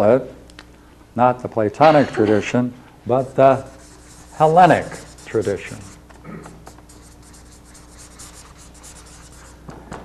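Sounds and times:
steady low hum: 0.0 - 10.0
marker pen writing on paper: 3.8 - 6.0, 6.6 - 9.6.

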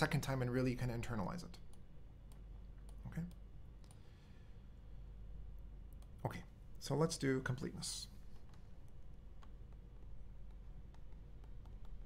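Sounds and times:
steady low hum: 0.0 - 12.0
computer mouse clicks: 1.5 - 4.1, 5.9 - 6.2, 8.3 - 12.0.

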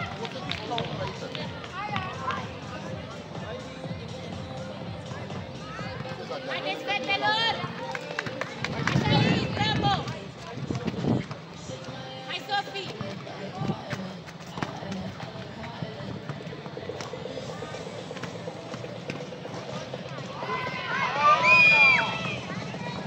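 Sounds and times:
background music: 0.0 - 23.0
running footsteps: 7.2 - 23.0
players shouting: 19.7 - 23.0.

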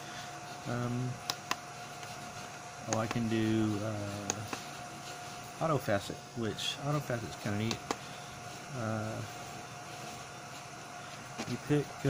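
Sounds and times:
machine humming and whining: 0.0 - 12.0.

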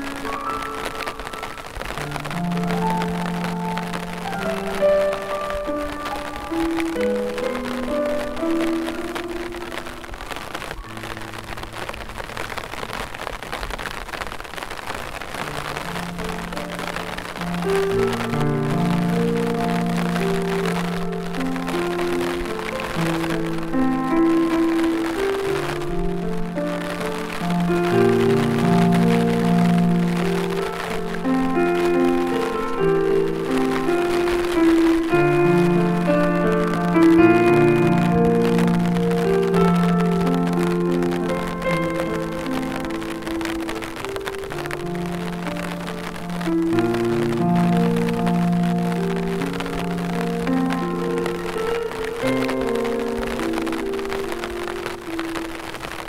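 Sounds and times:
rain pattering: 0.0 - 56.0
slow gentle piano music: 0.0 - 56.0.

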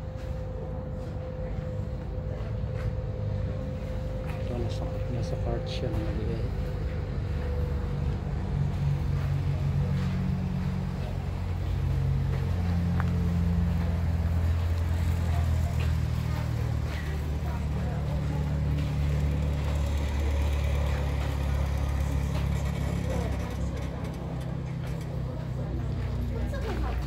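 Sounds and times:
faint background voices: 0.0 - 27.0
low mechanical drone: 0.0 - 27.0.

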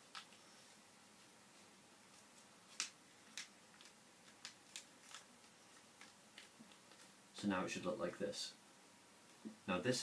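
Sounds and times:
paper crackling while folded: 2.1 - 7.1.

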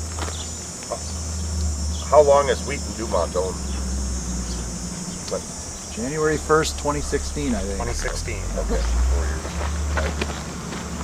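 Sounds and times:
high-pitched insect buzz: 0.0 - 11.0
steady low hum: 0.0 - 11.0.

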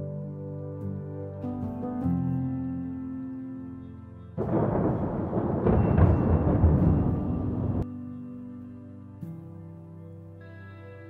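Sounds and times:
soft sustained music: 0.0 - 11.0
thunder rumble: 4.4 - 7.8.

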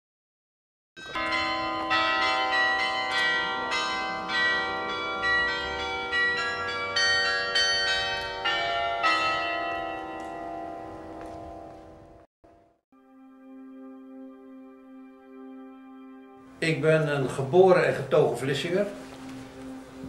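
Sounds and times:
church bells ringing: 1.0 - 12.3, 13.0 - 20.0.

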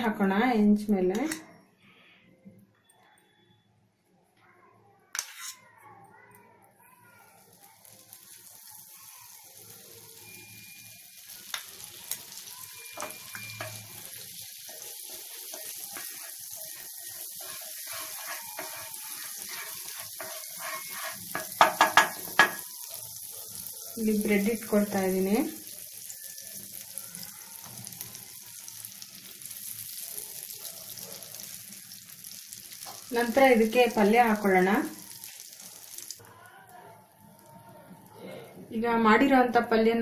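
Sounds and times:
butter sizzling in a pan: 5.2 - 5.6, 7.0 - 37.7
utensil clinking against pan: 17.4 - 22.7.

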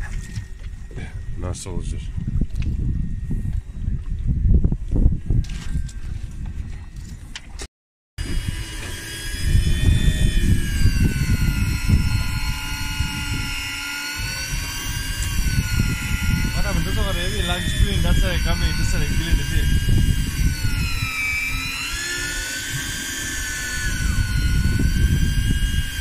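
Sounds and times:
electric fishing reel motor whining: 0.0 - 7.2, 8.2 - 26.0.

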